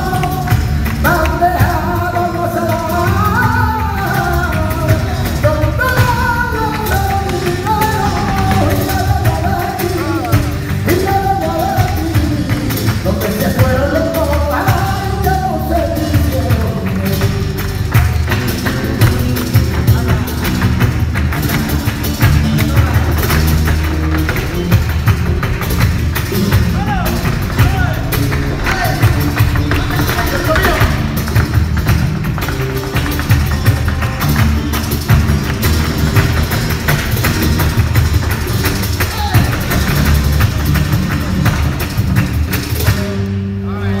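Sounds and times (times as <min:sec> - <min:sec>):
percussive dance footwork: 0:00.0 - 0:43.2
sharp handclaps: 0:00.0 - 0:43.3
flamenco guitars: 0:00.0 - 0:44.0.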